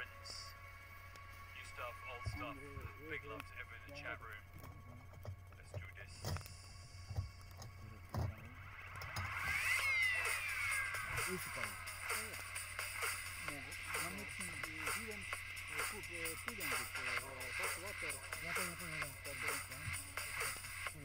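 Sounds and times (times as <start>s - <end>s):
voices talking: 0.0s - 0.6s, 1.4s - 21.0s
faint music: 0.0s - 21.0s.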